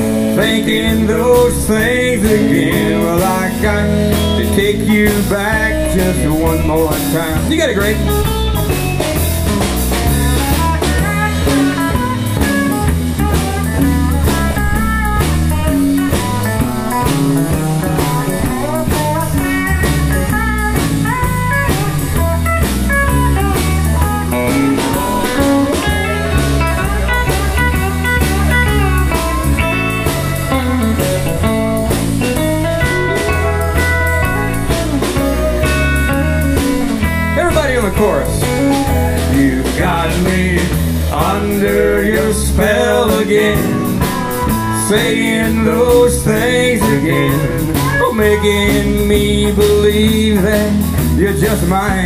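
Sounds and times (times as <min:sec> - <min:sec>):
electric bass line: 0:00.0 - 0:52.0
lead melody: 0:00.0 - 0:52.0
rhythm guitar: 0:00.0 - 0:52.0
steady drum beat: 0:00.0 - 0:52.0.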